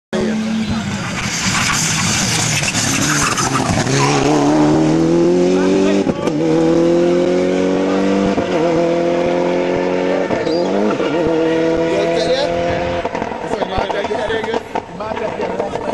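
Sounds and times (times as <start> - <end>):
rally car engine accelerating: 0.2 - 15.9.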